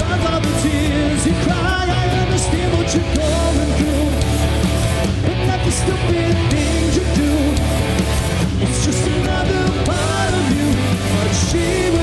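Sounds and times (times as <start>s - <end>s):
person singing into microphone: 0.0s - 4.2s, 5.4s - 7.8s, 8.6s - 12.0s
rock band playing: 0.0s - 12.0s.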